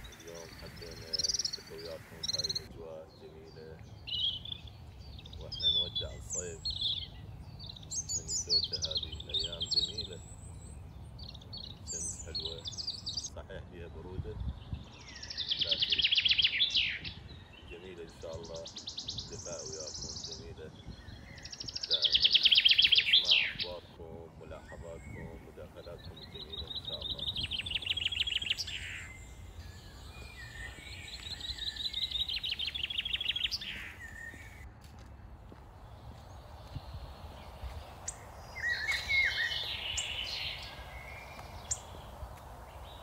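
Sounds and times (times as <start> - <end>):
bird chattering calls: 0.0 - 10.6, 11.3 - 13.5, 15.1 - 17.1, 17.7 - 34.6, 36.8 - 43.0
bird trilling call: 0.0 - 13.4, 15.0 - 34.6, 35.9 - 43.0.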